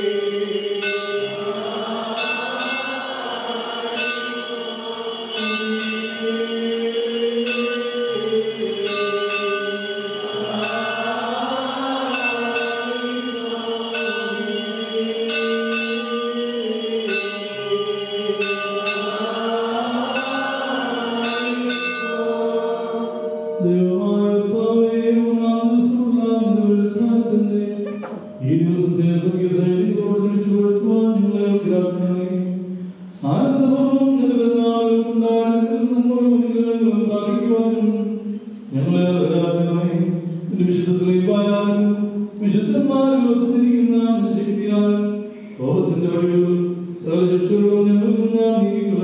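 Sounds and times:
bell ringing: 0:00.0 - 0:24.7, 0:27.9 - 0:29.8, 0:36.7 - 0:42.7
liturgical chanting: 0:00.0 - 0:49.0.

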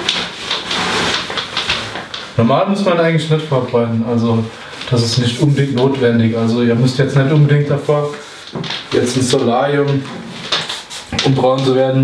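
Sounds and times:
spray can hissing: 0:10.6 - 0:11.2.

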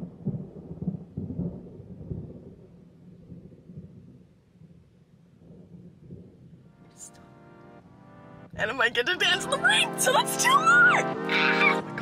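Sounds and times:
low rumble of thunder: 0:00.0 - 0:06.8.

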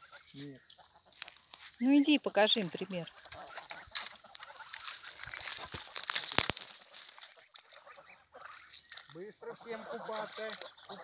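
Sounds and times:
goslings calling: 0:00.0 - 0:11.0
water splashing: 0:03.6 - 0:11.0.

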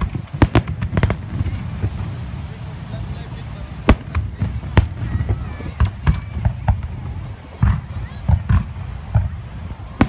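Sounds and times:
fireworks bursting with sharp bangs: 0:00.0 - 0:10.0.

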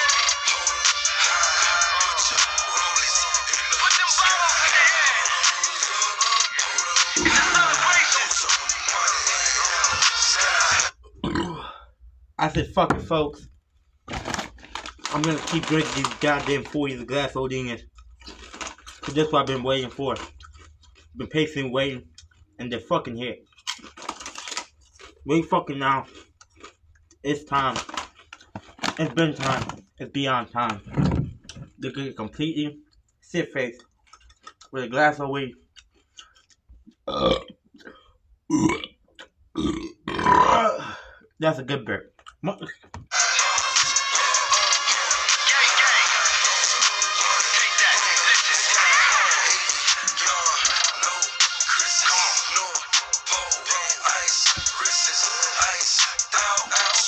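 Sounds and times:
music with a beat: 0:00.0 - 0:11.0, 0:43.1 - 0:57.0
man burping: 0:07.2 - 0:08.0, 0:11.0 - 0:12.0, 0:37.0 - 0:41.3.

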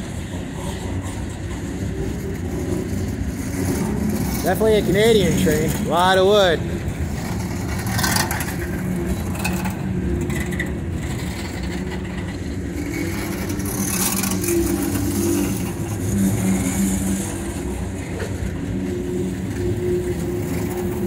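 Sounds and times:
freight train wheels rumbling on rail: 0:00.0 - 0:21.0.

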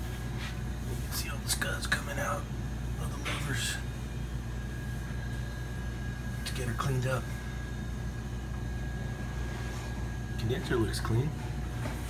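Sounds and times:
faint high whine: 0:00.0 - 0:12.0
low machine hum: 0:00.0 - 0:12.0.

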